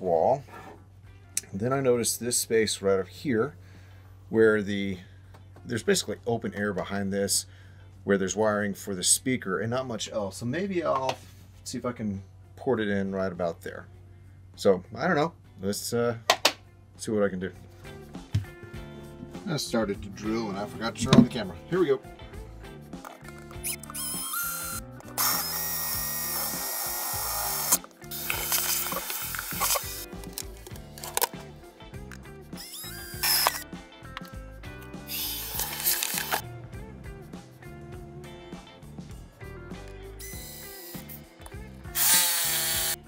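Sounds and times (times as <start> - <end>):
background music: 0.0 - 43.0
power drill boring through panel: 23.6 - 30.0, 32.6 - 33.6, 35.1 - 36.4, 42.0 - 43.0.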